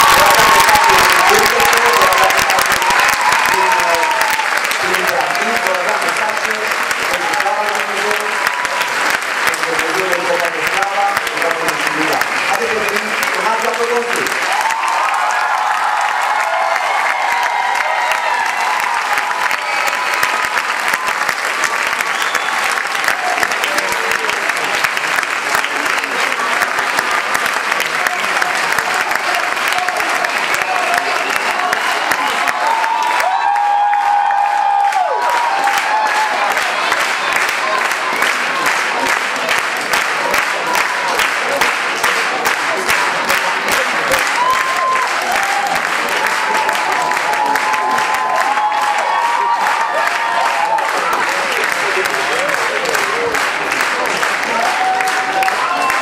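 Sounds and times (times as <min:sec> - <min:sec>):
crowd shouting: 0:00.0 - 0:05.4
audience applauding: 0:00.0 - 0:56.0.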